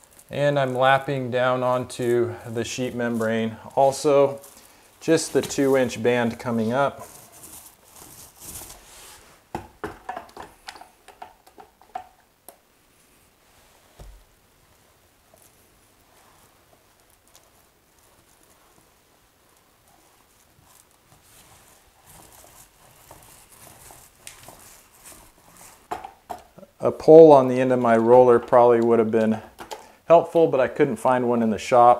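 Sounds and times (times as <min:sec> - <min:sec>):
paint roller rolling: 0:00.0 - 0:12.2, 0:14.7 - 0:29.7
paint roller clicks and scrapes: 0:19.6 - 0:26.4.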